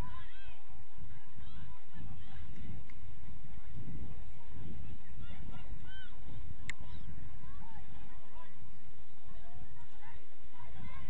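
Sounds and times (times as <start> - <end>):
low rumble of outdoor noise: 0.0 - 11.0.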